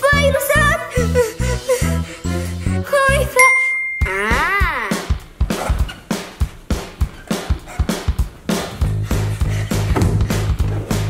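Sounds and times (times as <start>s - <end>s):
cartoonish music with bass beat: 0.0s - 11.0s
bright bell-like ding: 3.4s - 4.3s.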